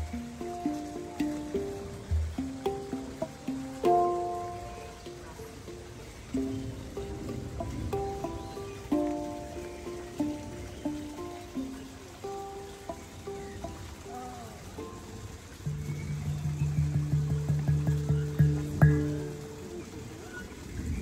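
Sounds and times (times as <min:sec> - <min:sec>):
handpan melody: 0:00.0 - 0:21.0.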